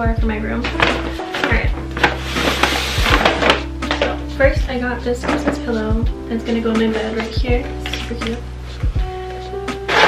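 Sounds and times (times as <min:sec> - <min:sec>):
pop music with steady beat: 0:00.0 - 0:09.9
paper bag rustling and crinkling: 0:00.7 - 0:04.2.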